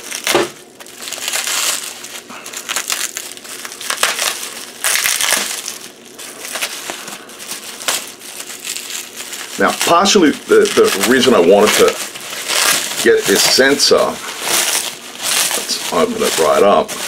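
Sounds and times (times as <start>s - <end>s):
bubble wrap crinkling: 0.0s - 17.0s.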